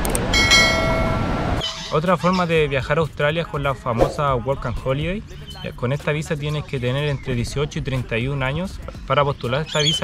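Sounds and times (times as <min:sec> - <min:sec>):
bell-like chime: 0:00.4 - 0:01.3.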